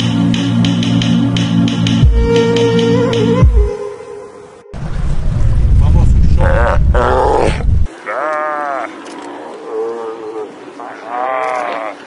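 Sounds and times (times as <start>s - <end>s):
loud low rumble: 4.7s - 7.9s
sea lions calling: 7.9s - 12.0s.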